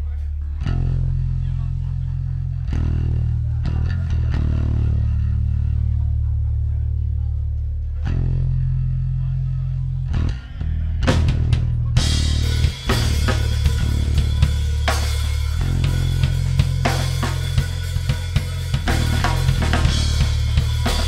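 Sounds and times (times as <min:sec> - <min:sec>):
held low bass: 0:00.0 - 0:21.0
rock band playing live: 0:11.0 - 0:21.0.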